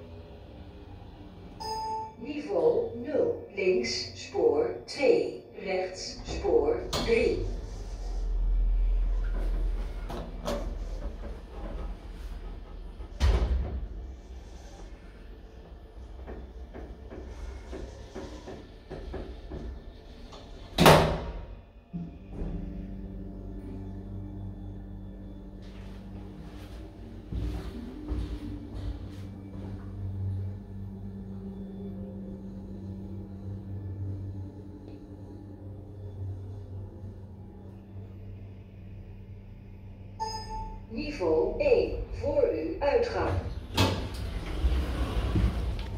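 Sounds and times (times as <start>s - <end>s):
low hydraulic hum: 0.0s - 45.9s
sliding doors closing: 6.0s - 37.2s, 43.1s - 45.9s.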